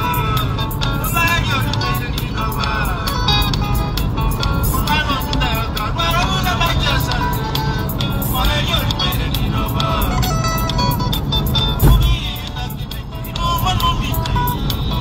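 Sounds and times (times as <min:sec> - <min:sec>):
backing music with low beat: 0:11.5 - 0:12.9.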